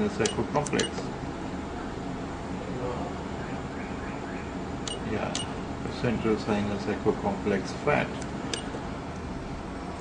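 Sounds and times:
sharp high click: 4.8s - 5.5s.

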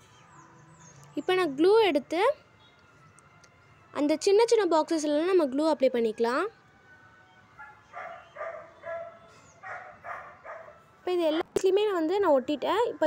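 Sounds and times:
dog yapping: 7.6s - 10.8s.

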